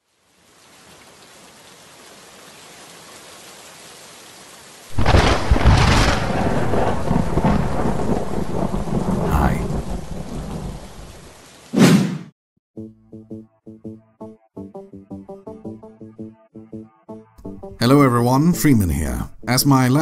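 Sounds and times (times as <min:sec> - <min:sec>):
steady rain: 0:00.0 - 0:11.8
thunderclap rumbling: 0:04.9 - 0:11.3.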